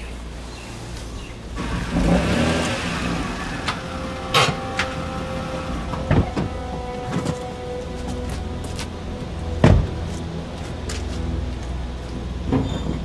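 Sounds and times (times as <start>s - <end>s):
car pulling up and stopping: 0.5s - 13.0s.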